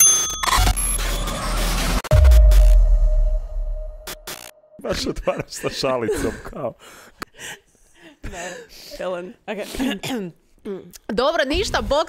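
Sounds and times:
electronic music: 0.4 - 4.8
low bass rumble: 2.1 - 4.8.

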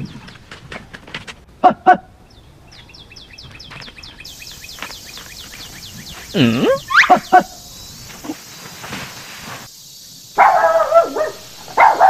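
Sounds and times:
bird chirping: 2.2 - 9.0.

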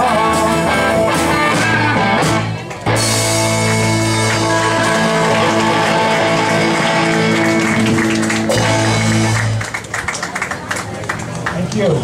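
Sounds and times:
rock band playing chord: 0.0 - 9.6
audience clapping: 2.6 - 12.0.

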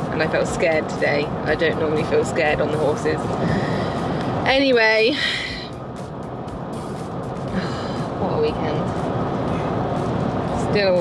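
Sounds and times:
car interior road and engine noise: 0.0 - 11.0.

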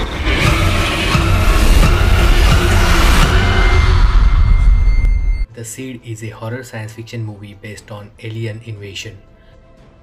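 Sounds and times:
deep rumble: 0.0 - 5.5.

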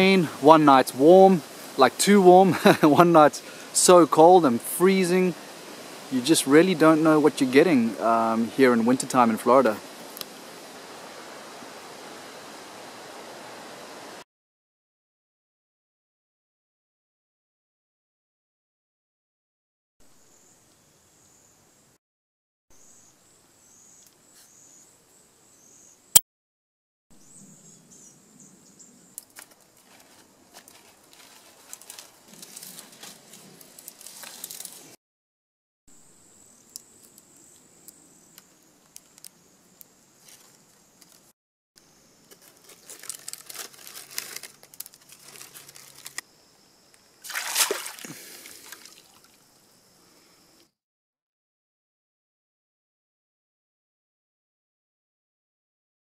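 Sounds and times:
dry grass rustling and crackling: 29.2 - 35.0, 40.2 - 41.3, 42.2 - 46.2, 47.2 - 49.2.

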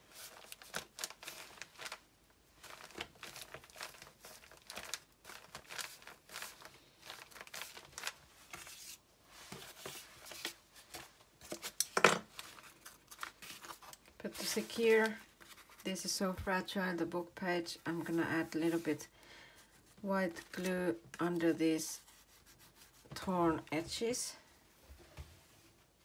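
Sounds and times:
paper crinkling and rustling: 0.0 - 16.5.

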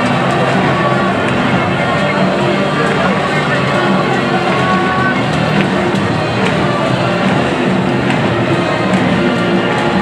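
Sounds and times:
crowd chatter: 0.0 - 10.0
music over public-address system: 0.0 - 10.0.

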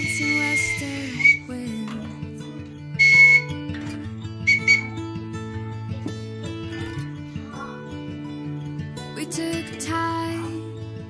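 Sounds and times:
toy whistle toots: 0.0 - 1.5, 3.0 - 3.5, 4.5 - 5.0
song with guitar: 0.0 - 11.0.

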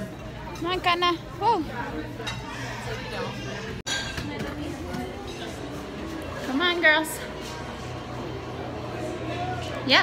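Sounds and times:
indistinct voices and chatter: 0.0 - 10.0.

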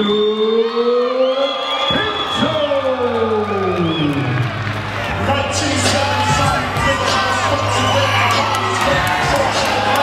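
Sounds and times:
crowd cheering and whooping: 0.0 - 10.0.

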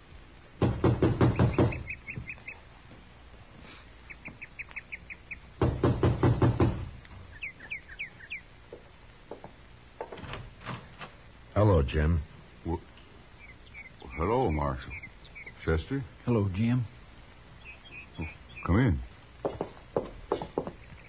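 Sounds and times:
knocking on a door: 0.6 - 2.3, 5.6 - 6.9, 19.4 - 20.8
bird chirps: 1.1 - 2.6, 4.0 - 5.6, 7.2 - 8.5, 13.4 - 15.9, 17.5 - 19.6, 20.4 - 21.0.

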